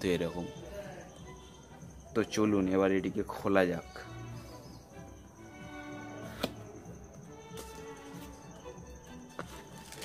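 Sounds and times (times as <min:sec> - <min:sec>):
faint background music: 0:00.0 - 0:10.0
box flap snapping: 0:06.3 - 0:06.6.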